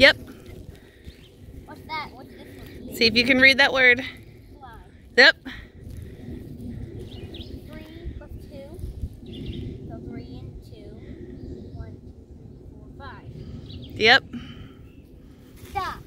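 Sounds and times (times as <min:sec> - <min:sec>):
steady outdoor background: 0:00.0 - 0:16.0.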